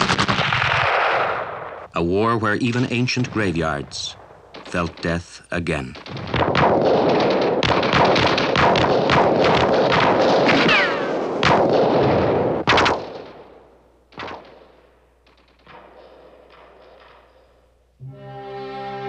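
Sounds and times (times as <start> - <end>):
rapid machine-gun fire: 0.0 - 1.4, 4.5 - 13.5, 14.1 - 17.6
lone gunshot: 0.0 - 1.9, 6.0 - 14.8.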